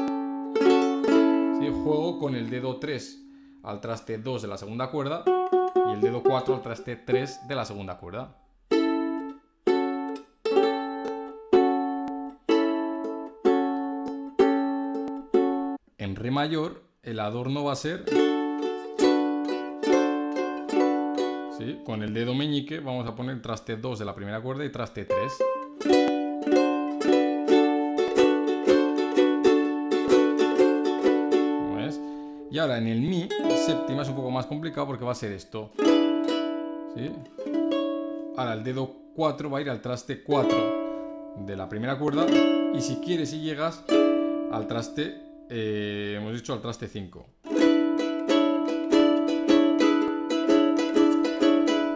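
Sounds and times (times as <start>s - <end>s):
ukulele strumming chords: 0.0s - 3.6s, 5.1s - 7.8s, 8.7s - 15.8s, 18.0s - 22.3s, 25.1s - 45.6s, 47.4s - 51.9s.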